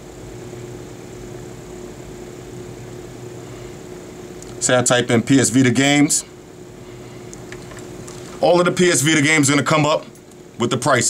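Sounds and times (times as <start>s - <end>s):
room hum and hiss: 0.0s - 11.0s.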